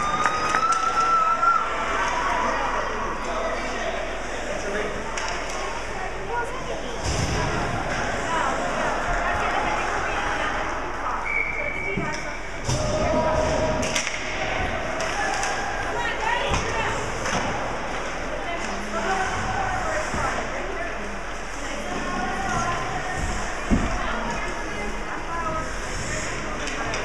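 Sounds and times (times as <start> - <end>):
spectators chattering: 0.0 - 27.0.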